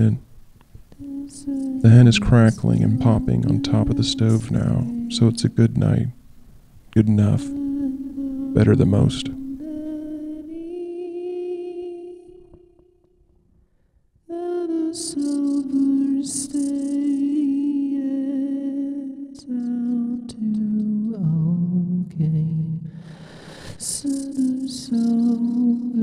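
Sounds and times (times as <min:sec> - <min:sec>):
person singing wordless melody: 0:00.9 - 0:13.1, 0:14.3 - 0:26.0
breathy hisses: 0:23.0 - 0:25.2.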